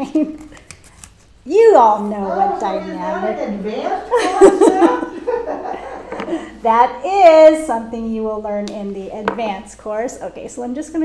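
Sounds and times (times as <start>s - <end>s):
woman laughing: 4.1s - 6.6s.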